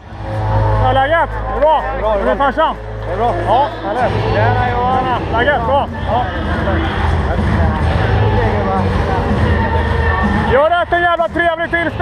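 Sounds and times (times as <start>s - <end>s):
crowd noise rumbling: 0.0s - 12.0s.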